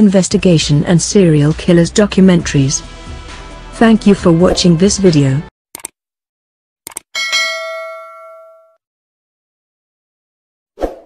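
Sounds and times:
notification bell ding: 7.2s - 8.8s.

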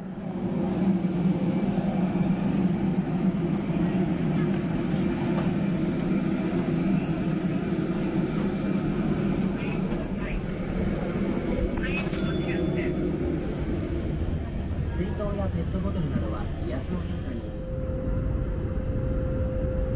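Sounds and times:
jet airliner drone with whine: 0.0s - 19.9s.

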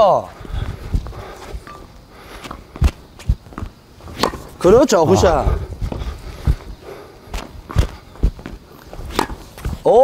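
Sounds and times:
footsteps on hard court: 5.8s - 9.8s.

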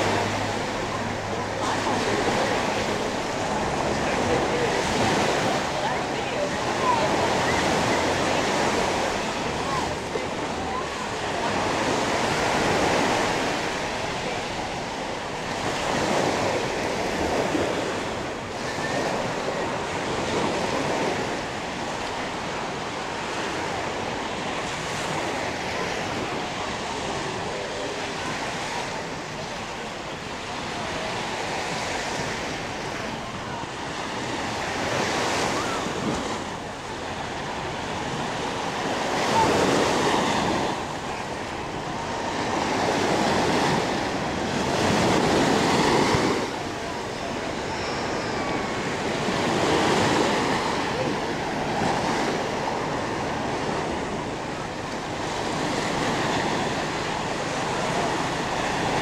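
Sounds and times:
surf washing on sandy beach: 0.0s - 59.0s.

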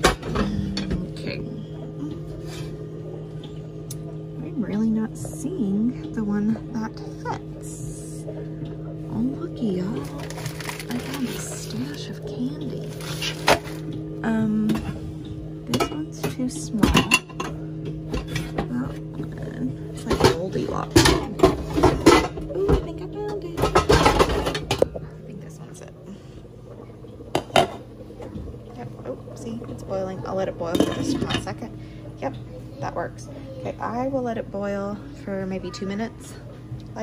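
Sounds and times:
pots and pans clanking: 0.0s - 1.1s, 12.8s - 13.9s, 15.7s - 19.1s, 20.0s - 25.1s, 27.3s - 28.4s, 30.6s - 31.7s.

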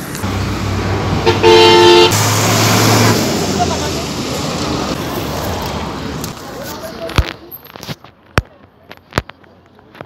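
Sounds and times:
road noise: 0.0s - 10.0s
vehicle horn blast: 1.2s - 2.2s.

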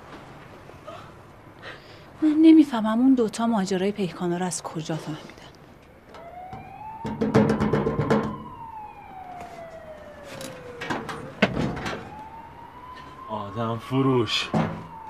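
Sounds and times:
wailing siren: 6.0s - 15.0s
sharp knocks: 6.5s - 8.6s.

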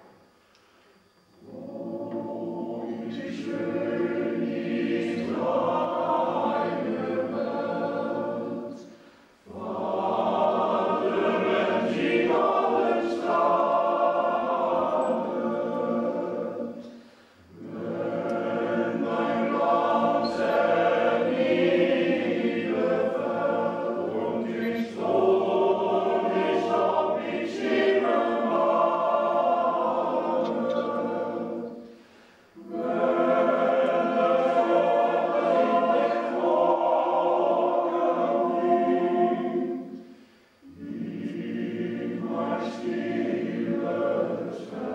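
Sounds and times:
men's choir singing: 1.4s - 8.9s, 9.5s - 44.9s.

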